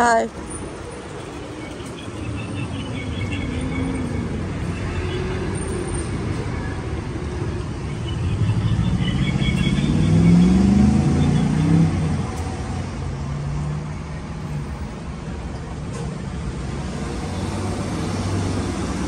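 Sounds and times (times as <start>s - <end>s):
low traffic rumble: 0.0s - 19.0s
vehicle accelerating past: 5.6s - 13.9s.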